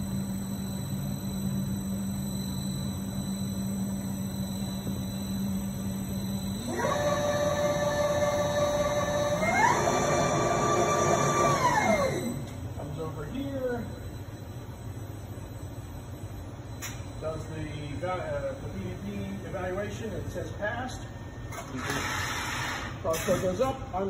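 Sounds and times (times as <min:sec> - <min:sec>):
low machine hum: 0:00.0 - 0:24.0
drive motor whining: 0:06.6 - 0:12.5.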